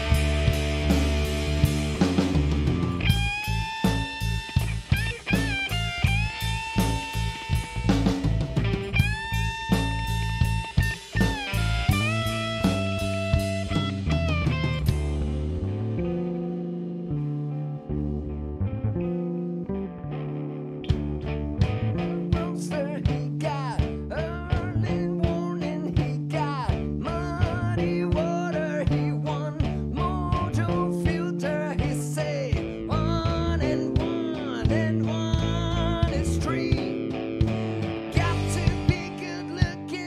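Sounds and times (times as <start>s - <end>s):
drum kit: 0.0s - 16.8s, 20.8s - 40.0s
bass guitar: 0.0s - 40.0s
electric guitar lead line: 0.0s - 40.0s.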